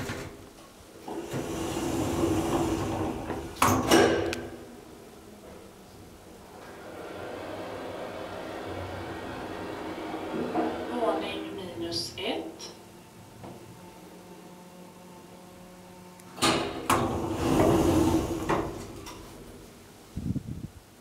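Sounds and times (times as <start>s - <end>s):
elevator doors sliding shut: 0.0s - 20.2s
elevator hum: 0.0s - 20.5s.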